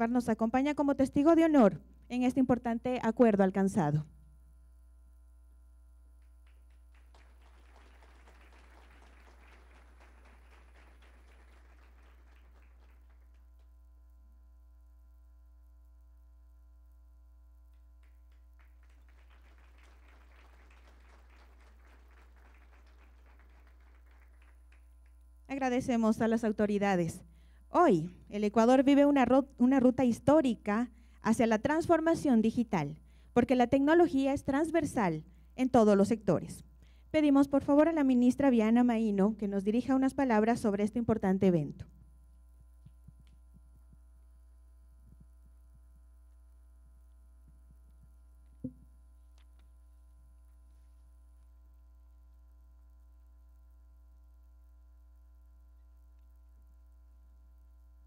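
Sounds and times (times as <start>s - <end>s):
low electrical hum: 0.0s - 58.0s
faint applause: 6.4s - 13.4s, 18.0s - 25.0s.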